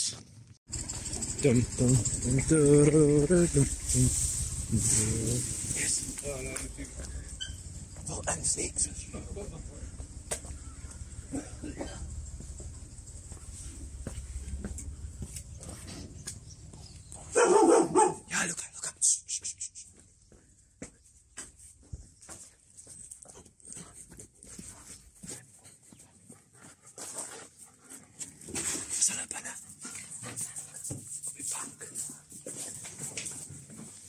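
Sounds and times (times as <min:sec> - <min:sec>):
low steady rumble: 0:00.7 - 0:16.7
footsteps on concrete: 0:13.3 - 0:17.4, 0:19.9 - 0:27.6.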